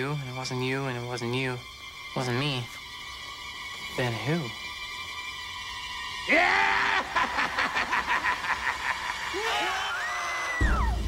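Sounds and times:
young people screaming: 0:06.1 - 0:11.0.

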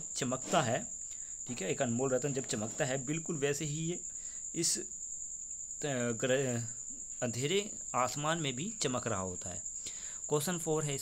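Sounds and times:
person speaking: 0:01.5 - 0:04.0.

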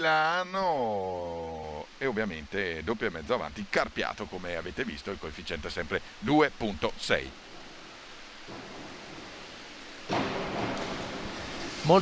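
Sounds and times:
steady pool hall hiss: 0:00.0 - 0:12.0.

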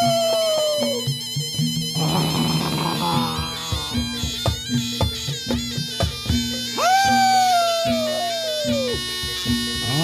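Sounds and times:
reedy wind instrument melody: 0:00.0 - 0:10.0
drum strokes: 0:02.0 - 0:07.2.

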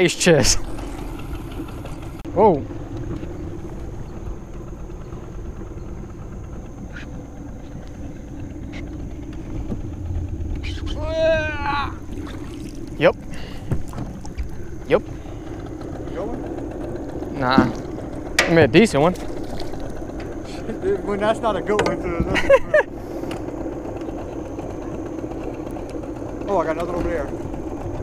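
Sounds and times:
boat motor humming: 0:00.0 - 0:28.0.

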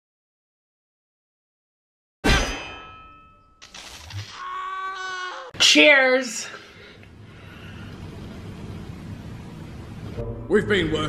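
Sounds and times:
loud metallic clang: 0:02.2 - 0:03.6.

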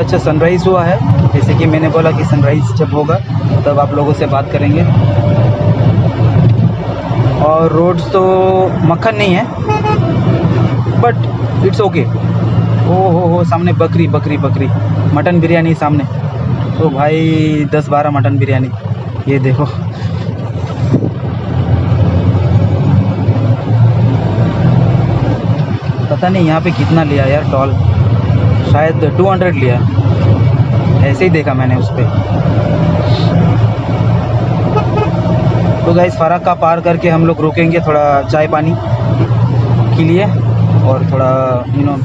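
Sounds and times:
car engine rumble: 0:00.0 - 0:42.0
road noise inside car: 0:00.0 - 0:42.0.

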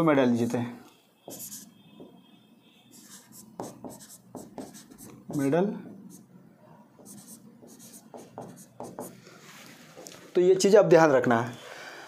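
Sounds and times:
marker pen scratching on board: 0:01.3 - 0:01.9, 0:02.9 - 0:06.3, 0:07.0 - 0:09.2.

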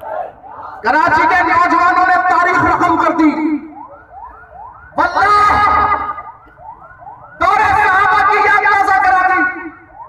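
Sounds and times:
siren-like warbling tone: 0:00.4 - 0:10.0.

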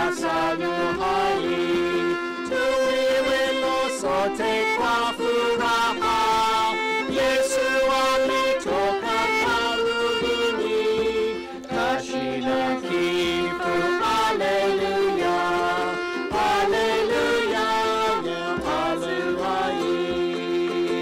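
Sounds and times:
ukuleles strumming chords: 0:00.0 - 0:21.0
violins playing: 0:00.0 - 0:21.0
djembe drumming: 0:00.1 - 0:21.0.

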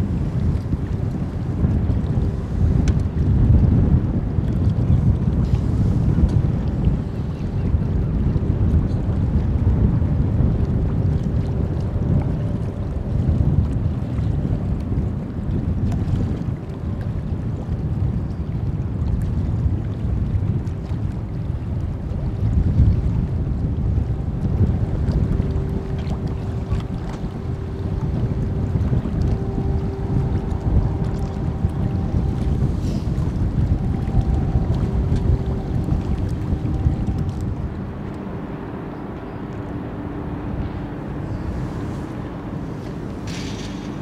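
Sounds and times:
faint steady hum: 0:00.0 - 0:44.0
low drone of ships: 0:00.0 - 0:44.0
wind buffeting microphone: 0:00.0 - 0:44.0.

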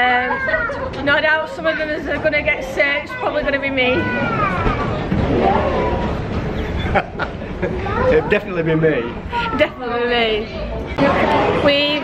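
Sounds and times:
laughter: 0:06.5 - 0:07.9.

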